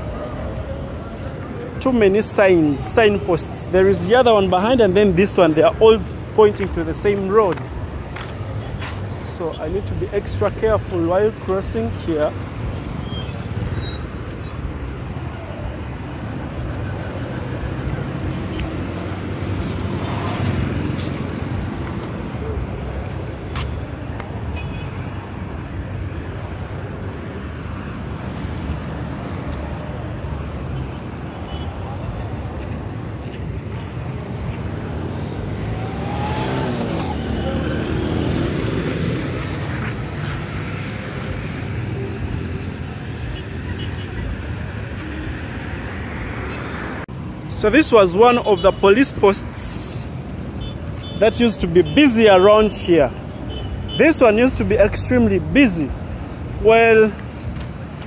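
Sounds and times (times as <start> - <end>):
cars passing on a street: 0.0 - 58.0
motorcycles passing: 0.0 - 58.0.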